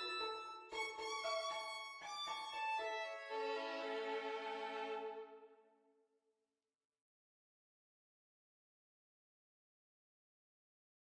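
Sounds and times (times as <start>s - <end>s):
violin music: 0.0s - 5.6s.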